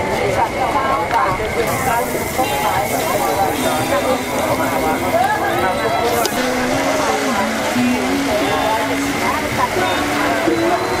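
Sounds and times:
background voices: 0:00.4 - 0:11.0
background music: 0:01.7 - 0:11.0.

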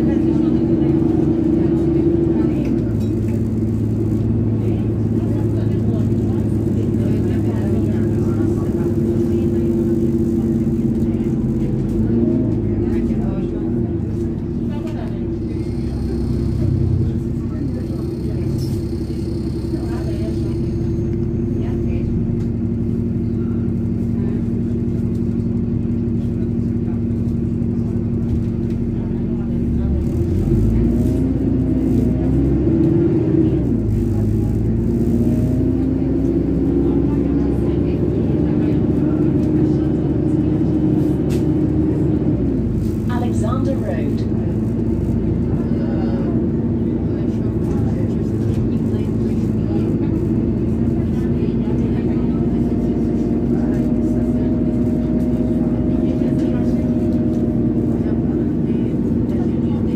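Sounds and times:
bus diesel engine: 0:00.0 - 0:59.9.

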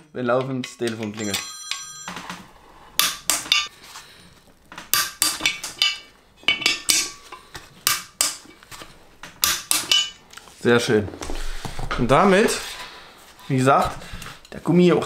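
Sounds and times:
metal tools clinking: 0:00.0 - 0:03.7, 0:05.0 - 0:08.7, 0:09.4 - 0:10.2.

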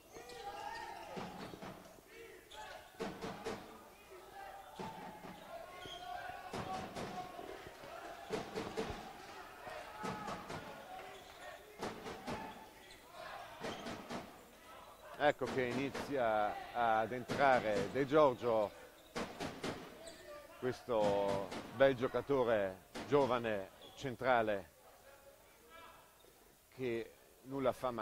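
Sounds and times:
faint voices: 0:00.0 - 0:19.0.

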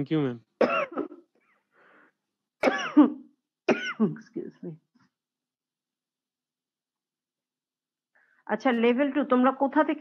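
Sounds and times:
woman coughing: 0:00.6 - 0:01.3, 0:02.6 - 0:04.2
woman speaking: 0:04.0 - 0:04.8, 0:08.5 - 0:10.0.

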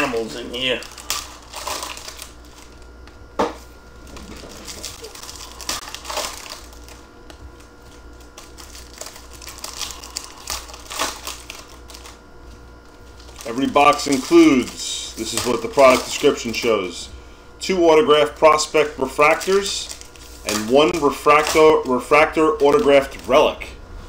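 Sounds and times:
foil packs crinkling: 0:00.0 - 0:23.7.

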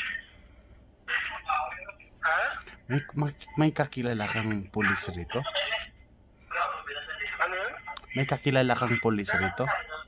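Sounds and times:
man speaking: 0:01.1 - 0:10.0.

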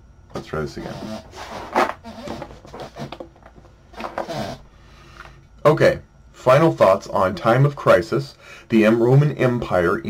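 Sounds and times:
man muttering: 0:00.8 - 0:01.3.

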